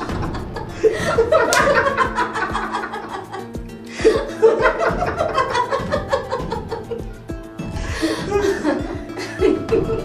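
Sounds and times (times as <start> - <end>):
man and woman laughing: 0.0 - 7.2, 7.8 - 10.0
background music: 0.0 - 10.0.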